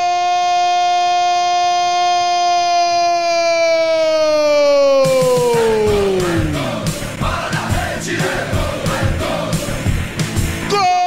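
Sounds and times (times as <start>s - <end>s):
commentator's long goal cry: 0.0s - 6.6s
crowd noise: 4.1s - 10.7s
jingle music with steady beat: 5.2s - 10.7s.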